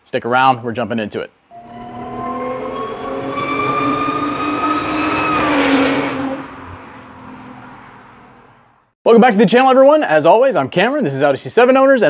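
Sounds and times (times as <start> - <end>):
car engine revving: 1.6 - 8.8.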